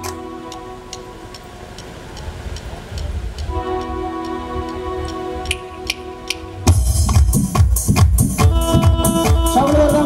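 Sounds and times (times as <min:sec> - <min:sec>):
electronic keyboard sustained chord: 0:00.0 - 0:02.2, 0:03.4 - 0:10.0
steady ticking beat: 0:00.0 - 0:10.0.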